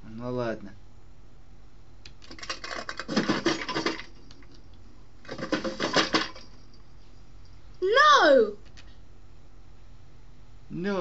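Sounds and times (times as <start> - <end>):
small objects rattling rummaged: 2.2 - 6.8.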